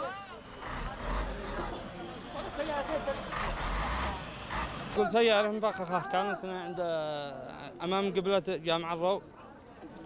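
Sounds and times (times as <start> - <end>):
street noise: 0.0 - 10.0
vehicle engine rumble: 0.3 - 5.0.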